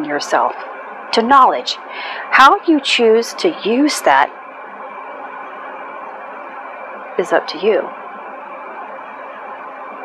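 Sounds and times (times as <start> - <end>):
faint constant hum: 0.0 - 10.0.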